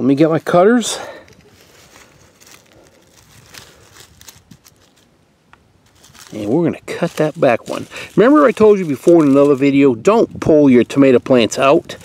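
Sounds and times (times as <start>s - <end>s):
dry leaves rustling and crackling: 0.1s - 5.2s, 5.8s - 12.0s.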